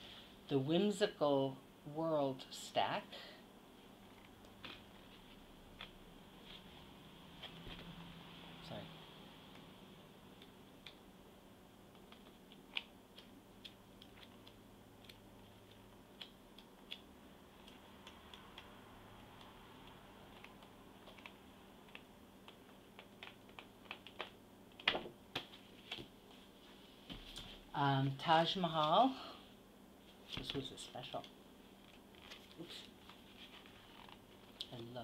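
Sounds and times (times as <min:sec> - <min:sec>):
paper pages flipping: 0:20.3 - 0:26.1, 0:30.3 - 0:34.8.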